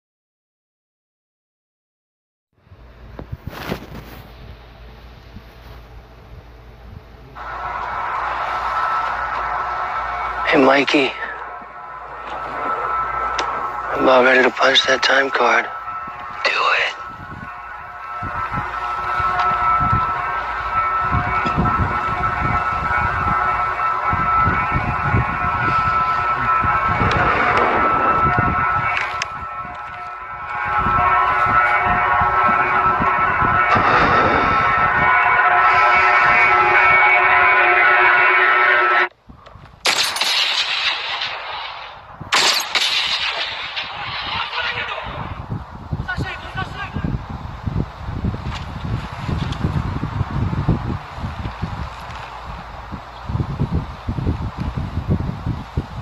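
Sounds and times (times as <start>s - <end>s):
sustained film music: 4.4s - 39.1s
low rumbling hits: 6.9s - 37.1s, 39.8s - 54.9s
rough noisy sound effects: 7.2s - 37.8s.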